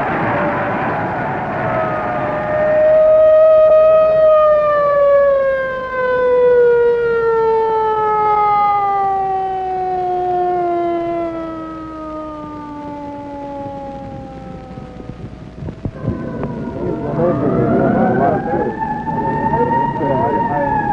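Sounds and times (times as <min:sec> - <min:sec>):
siren winding down: 0:00.0 - 0:20.9.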